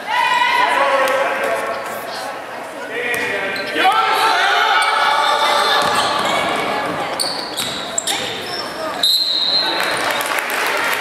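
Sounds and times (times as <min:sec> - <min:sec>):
people calling out: 0:03.6 - 0:09.8
sneaker squeaks: 0:04.8 - 0:10.2.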